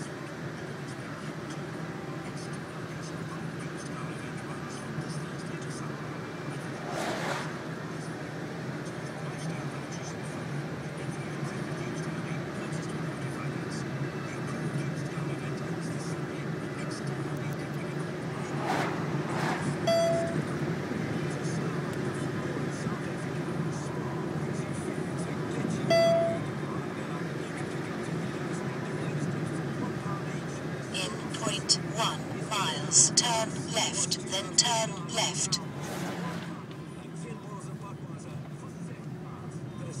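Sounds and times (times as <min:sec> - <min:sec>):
car road and engine noise: 0:00.0 - 0:40.0
short electronic beeps: 0:19.9 - 0:20.4, 0:25.9 - 0:26.5.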